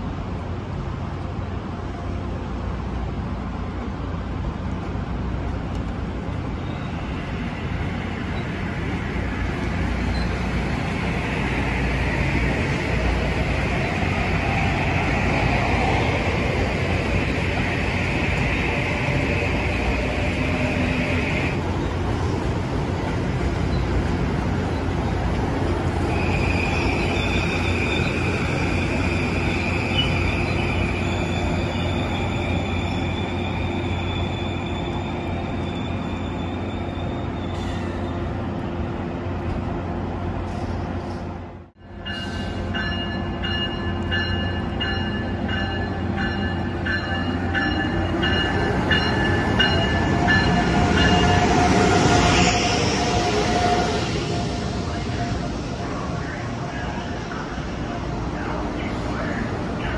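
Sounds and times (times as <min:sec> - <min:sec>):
electric train running past: 0:00.0 - 0:59.9
train pulling into station: 0:00.0 - 0:59.9
train wheel squeal: 0:06.2 - 0:59.9.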